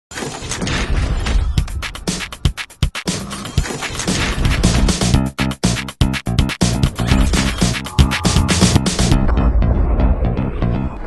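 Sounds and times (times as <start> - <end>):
television intro jingle: 6.6 - 10.8.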